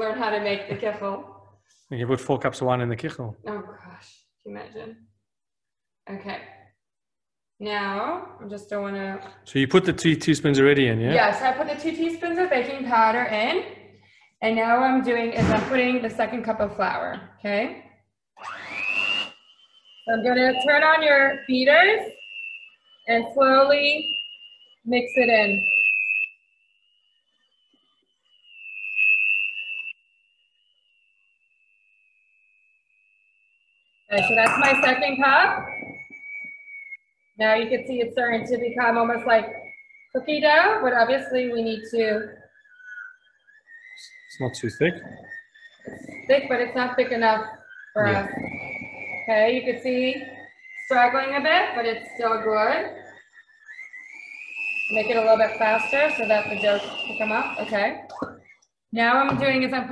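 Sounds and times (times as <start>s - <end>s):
electric hand mixer whine: 18.4s - 58.0s.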